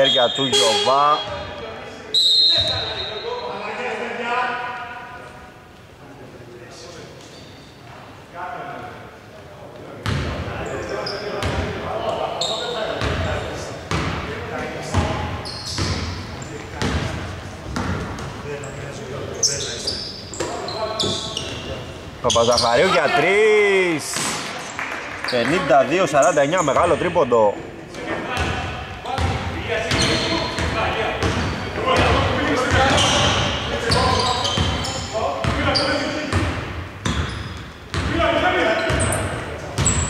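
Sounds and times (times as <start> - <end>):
players calling out: 0.0 - 4.0, 18.6 - 24.2.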